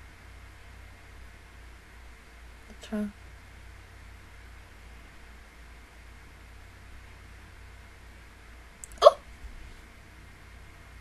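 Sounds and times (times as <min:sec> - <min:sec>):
person hiccuping: 0:08.9 - 0:09.2.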